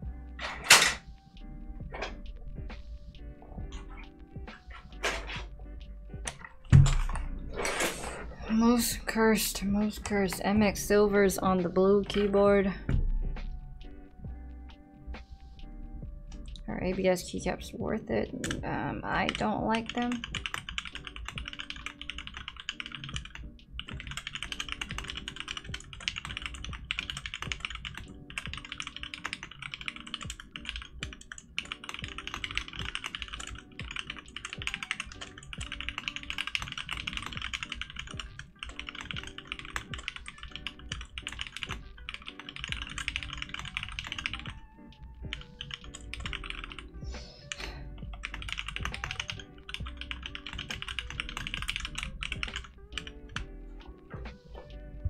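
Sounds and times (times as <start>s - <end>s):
mechanical keyboard typing: 18.4s - 44.6s, 45.3s - 46.9s, 48.1s - 53.4s.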